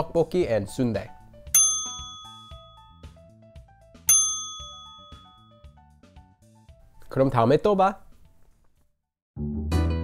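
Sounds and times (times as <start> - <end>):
soft background music: 0.0 - 8.6
bright bell dings: 1.5 - 3.2, 4.1 - 5.8.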